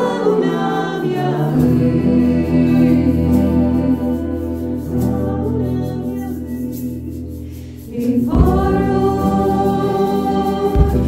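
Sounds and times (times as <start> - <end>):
acoustic guitar: 0.0 - 11.0
singers singing together: 0.0 - 11.0
drums: 8.2 - 11.0.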